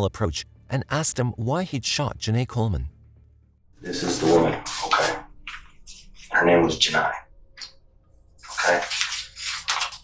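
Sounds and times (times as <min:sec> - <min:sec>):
person speaking: 0:00.0 - 0:03.0.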